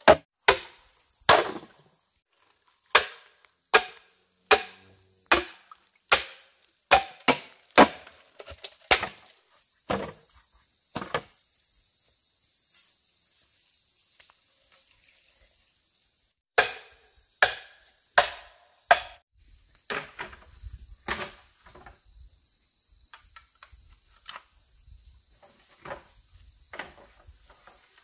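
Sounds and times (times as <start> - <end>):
bamboo club striking blade: 0.0 - 1.7, 2.9 - 8.1, 16.6 - 19.2
insects droning: 0.2 - 28.0.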